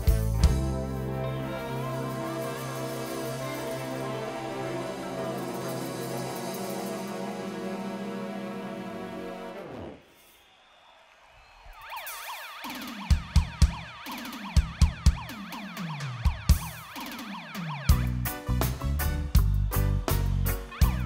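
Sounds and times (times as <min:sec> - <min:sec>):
reggae band with drums and bass: 0:00.0 - 0:08.1, 0:16.0 - 0:21.0
keyboard chord: 0:00.0 - 0:09.8
siren-like wailing effect: 0:11.7 - 0:18.1.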